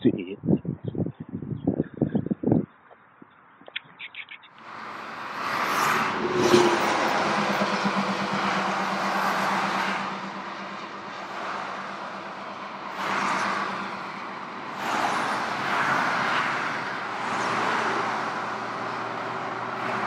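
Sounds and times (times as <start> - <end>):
highway traffic rushing past: 4.4 - 20.0
truck engine low hum: 4.6 - 20.0.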